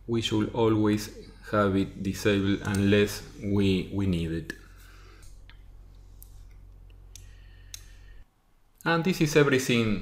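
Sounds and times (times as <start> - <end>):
man talking: 0.0 - 4.7, 8.8 - 10.0
low electrical hum: 0.0 - 10.0.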